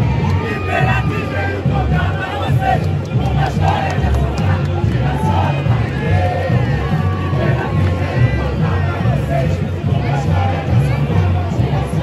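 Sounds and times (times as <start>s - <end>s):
crowd singing and shouting: 0.0s - 12.0s
samba drum beats: 0.0s - 12.0s.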